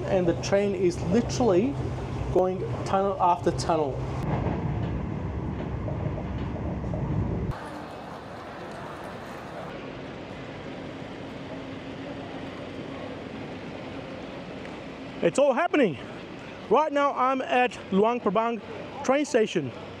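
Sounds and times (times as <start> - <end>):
train running rumble: 0.0 - 15.2.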